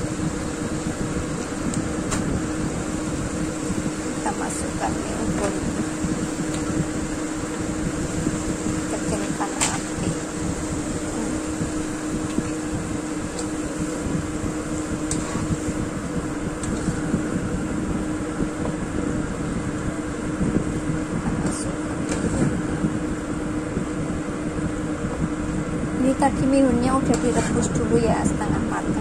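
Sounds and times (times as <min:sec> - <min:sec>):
mechanical hum with low rumble: 0:00.0 - 0:29.0.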